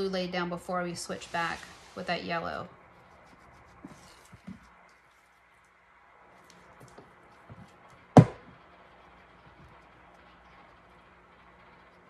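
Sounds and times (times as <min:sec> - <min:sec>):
hard object knocking: 0:08.2 - 0:08.5.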